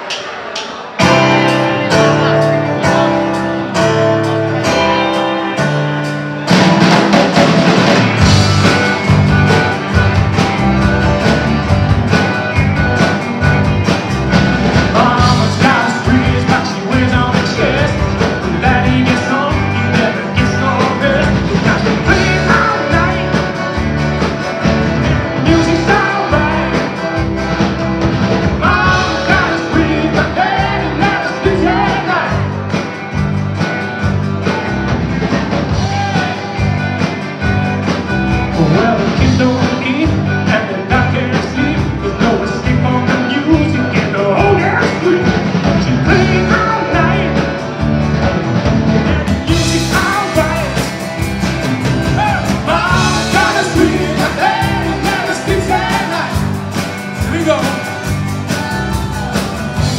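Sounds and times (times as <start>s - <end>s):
acoustic and electric guitars: 0.0s - 59.9s
keyboard: 0.0s - 59.9s
man singing lead: 14.7s - 23.6s, 25.1s - 27.2s, 28.5s - 32.6s, 35.7s - 37.1s, 38.4s - 47.6s, 49.0s - 51.3s, 52.0s - 59.9s.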